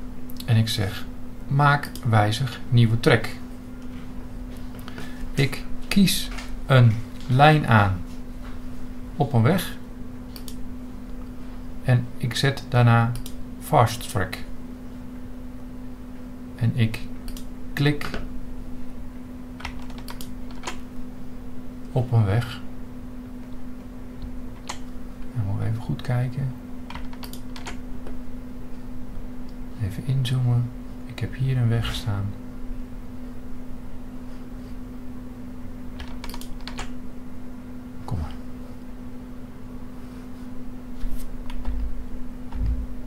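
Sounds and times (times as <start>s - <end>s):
low electrical hum: 0.0s - 43.0s
keyboard and mouse clicks: 19.6s - 20.8s, 26.9s - 27.8s, 36.0s - 36.9s.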